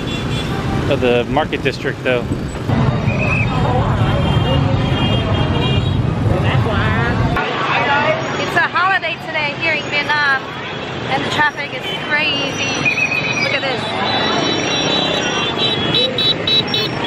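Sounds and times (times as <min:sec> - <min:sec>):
motorbike and scooter traffic: 0:00.0 - 0:17.0
people's voices: 0:00.9 - 0:16.8.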